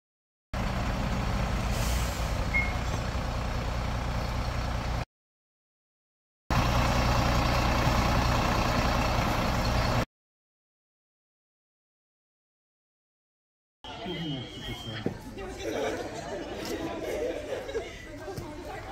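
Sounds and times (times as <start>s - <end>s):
diesel engine idling: 0.6s - 5.0s, 6.5s - 10.1s.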